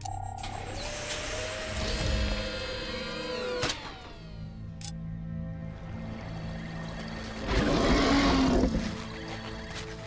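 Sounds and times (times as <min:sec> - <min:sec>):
background music: 0:00.0 - 0:10.0
machine mechanical hum: 0:00.1 - 0:04.6.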